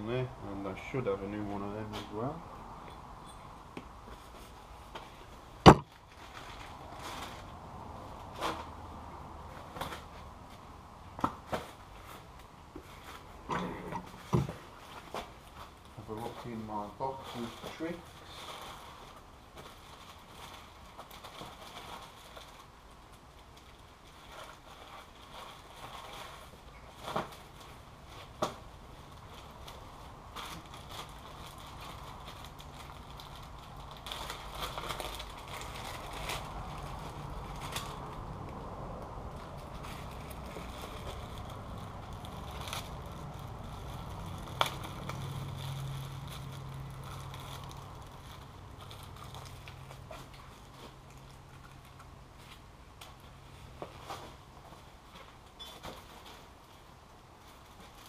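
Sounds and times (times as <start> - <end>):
rustling and crackling of parts: 2.9 - 58.0.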